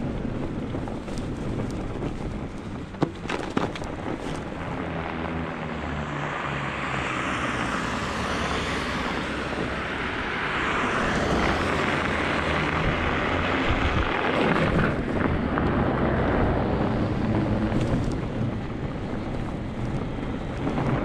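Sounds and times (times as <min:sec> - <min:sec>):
bike tires droning on snow: 0:00.0 - 0:21.0.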